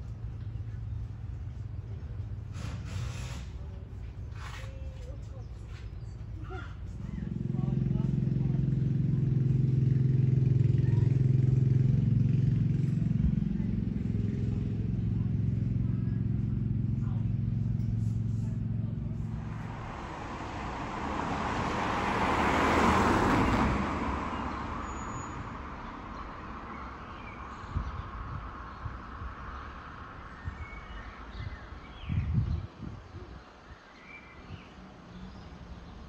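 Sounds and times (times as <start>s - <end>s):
low engine hum: 0.0s - 33.4s
car passing: 18.6s - 31.4s.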